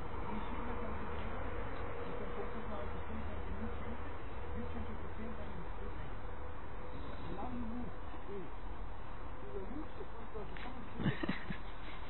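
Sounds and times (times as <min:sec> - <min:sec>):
thin constant tone: 0:00.0 - 0:12.0.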